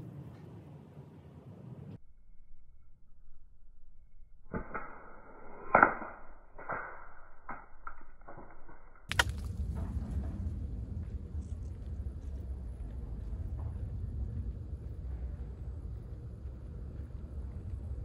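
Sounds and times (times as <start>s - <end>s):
slingshot shots hitting target: 4.5s - 9.6s
sharp crack: 4.5s - 9.9s
wind rumble on microphone: 9.2s - 18.0s.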